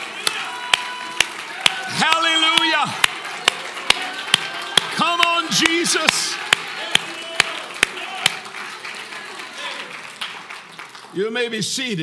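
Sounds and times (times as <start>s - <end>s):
congregation voices praising: 0.0s - 10.1s
sharp hand claps: 0.0s - 11.1s.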